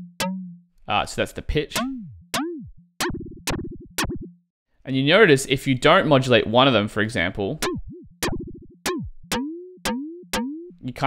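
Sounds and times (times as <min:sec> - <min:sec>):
plucky synth notes with pitch sweep: 0:00.0 - 0:00.8, 0:01.7 - 0:04.4, 0:07.6 - 0:10.9.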